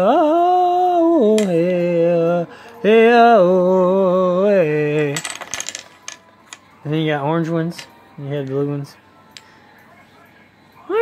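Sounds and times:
wooden game pieces clacking: 0:05.1 - 0:06.6.

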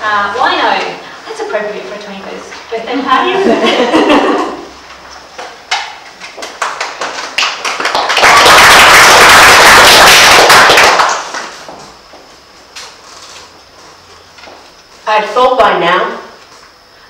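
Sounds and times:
audience applauding: 0:06.4 - 0:11.6.

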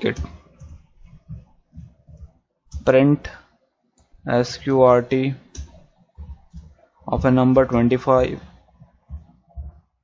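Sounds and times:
man's voice: 0:02.8 - 0:03.4, 0:07.0 - 0:08.6.

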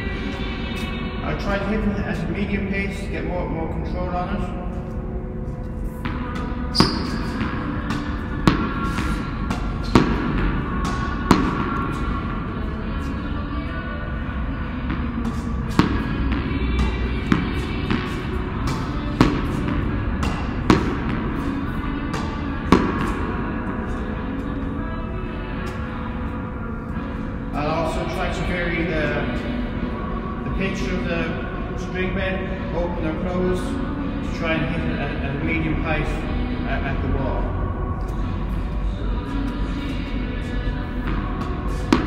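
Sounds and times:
background music: 0:00.0 - 0:42.0
ball hitting racket and wall: 0:05.9 - 0:13.2, 0:14.6 - 0:24.4, 0:39.8 - 0:42.0
ball bouncing: 0:06.0 - 0:12.3, 0:14.8 - 0:24.0, 0:41.0 - 0:42.0.

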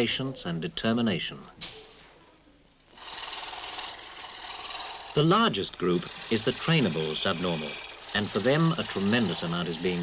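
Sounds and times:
machine rasping wood: 0:02.9 - 0:10.0.

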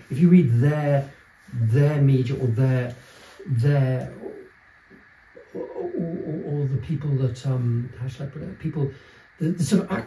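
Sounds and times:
man humming hesitantly: 0:05.4 - 0:06.6.

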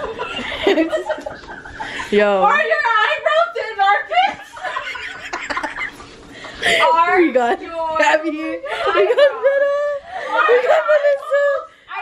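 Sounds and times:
women laughing: 0:00.0 - 0:02.4, 0:04.1 - 0:07.0, 0:08.4 - 0:11.7.

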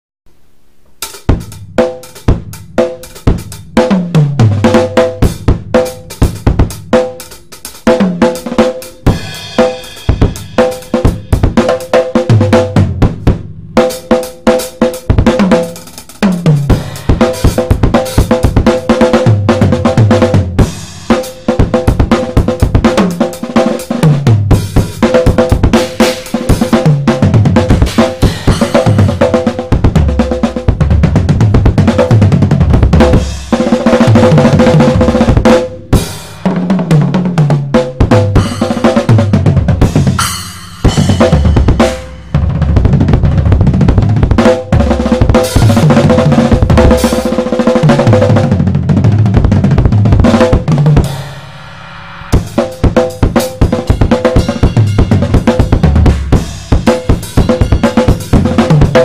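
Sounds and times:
drum kit groove: 0:00.9 - 0:59.0
low tom fills: 0:00.9 - 0:59.0.

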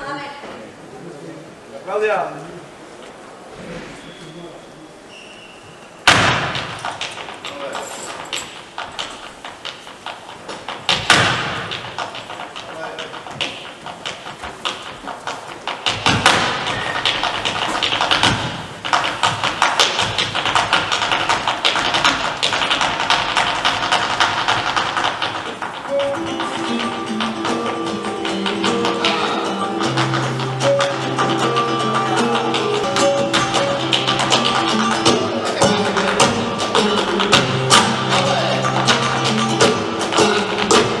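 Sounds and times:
footwork on wooden stage: 0:05.0 - 0:41.0
heavy foot stamps: 0:06.1 - 0:41.0
held musical notes: 0:25.8 - 0:41.0.

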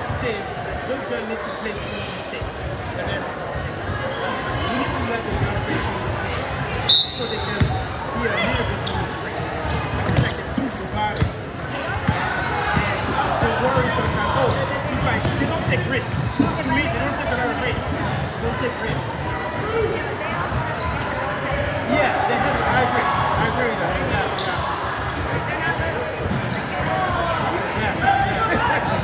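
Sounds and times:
voices in echoing hall: 0:00.0 - 0:29.0.

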